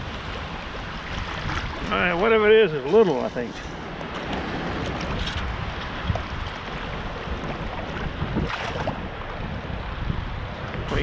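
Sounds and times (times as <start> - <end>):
wind on microphone: 0.0 - 2.4, 3.2 - 11.0
sea water sloshing: 0.0 - 10.8.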